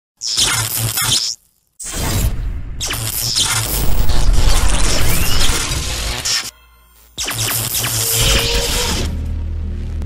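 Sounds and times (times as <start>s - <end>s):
loud crackling burst: 3.0s - 6.4s
low bass drone: 3.7s - 6.1s, 9.1s - 10.0s
music: 4.1s - 10.0s.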